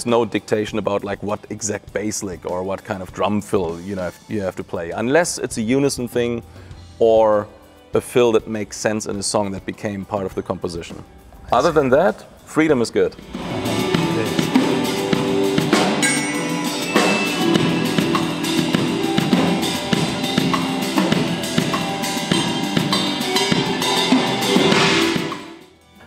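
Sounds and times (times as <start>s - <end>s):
fast drum solo: 11.6s - 25.6s
ringing cymbals: 13.1s - 25.8s.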